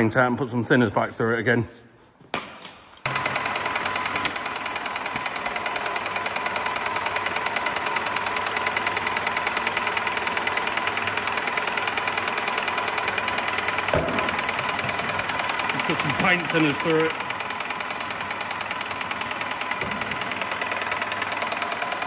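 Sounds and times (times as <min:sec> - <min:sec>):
paint sprayer pump knocking: 0:03.0 - 0:22.0.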